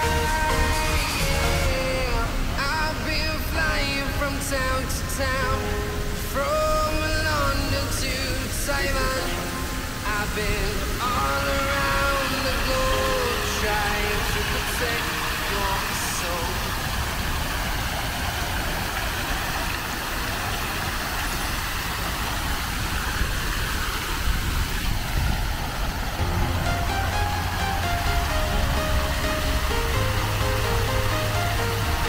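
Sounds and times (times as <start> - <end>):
song with vocals: 0.0 - 17.7, 26.2 - 32.0
fountain jets splashing: 0.0 - 32.0
traffic rumble: 0.0 - 32.0.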